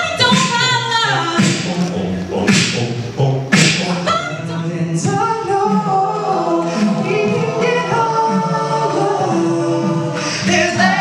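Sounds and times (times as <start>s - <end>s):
a cappella group singing: 0.0s - 11.0s.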